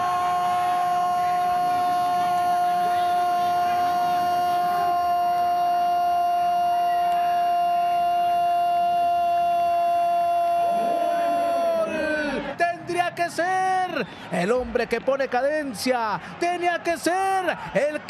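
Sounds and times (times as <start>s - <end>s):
commentator talking: 10.8s - 18.0s.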